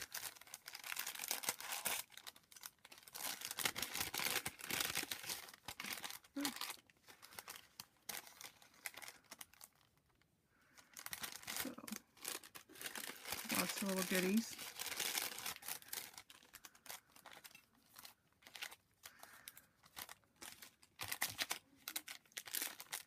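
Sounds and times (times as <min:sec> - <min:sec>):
plastic bag crinkling: 0:00.0 - 0:23.0.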